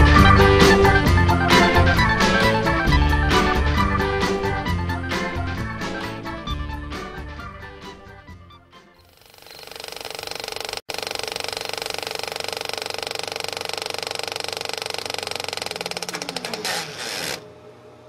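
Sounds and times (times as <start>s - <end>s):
film projector clatter: 9.2s - 17.5s.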